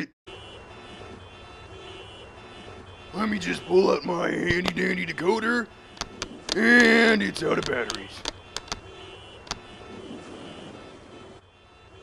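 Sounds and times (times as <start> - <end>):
faint hum: 0.0 - 12.0
faint rumbling ambience: 0.0 - 12.0.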